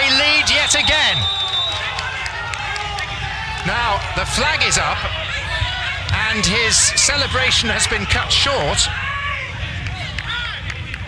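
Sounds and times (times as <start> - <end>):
players shouting: 0.0 - 11.0
steady background noise: 0.0 - 11.0.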